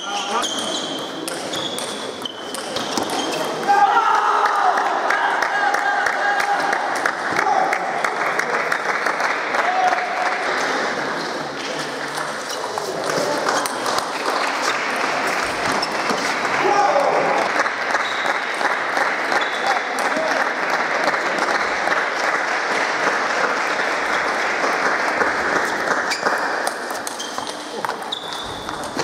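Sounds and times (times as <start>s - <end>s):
hubbub of many voices: 0.0s - 29.0s
ping pong balls clicking: 1.0s - 3.4s.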